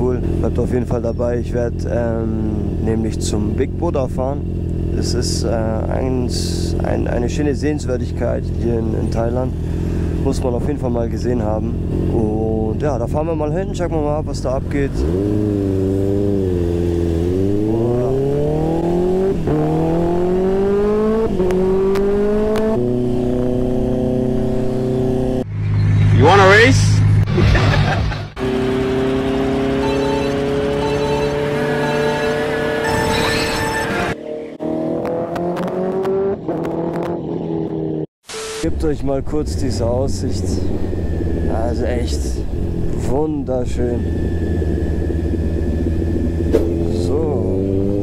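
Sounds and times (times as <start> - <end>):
motorcycle engine accelerating: 0.0 - 38.1, 38.8 - 48.0.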